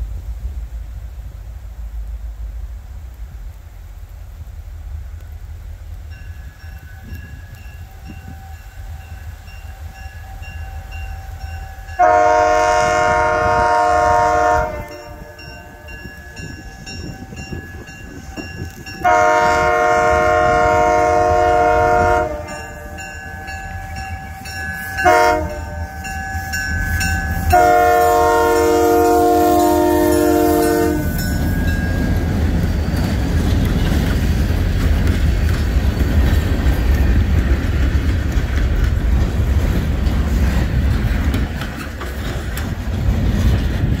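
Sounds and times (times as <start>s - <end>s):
train wheels clattering on rails: 6.0s - 44.0s
locomotive air horn blasts: 11.9s - 16.8s, 19.0s - 23.2s, 23.9s - 31.3s.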